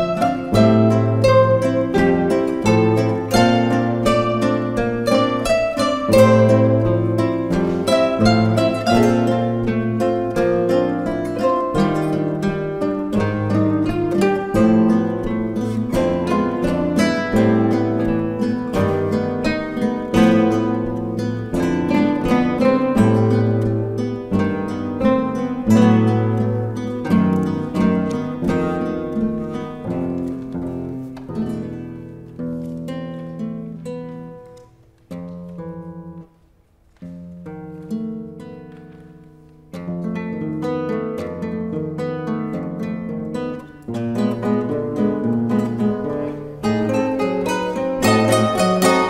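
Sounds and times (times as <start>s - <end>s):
classical guitars playing: 0.0s - 49.0s.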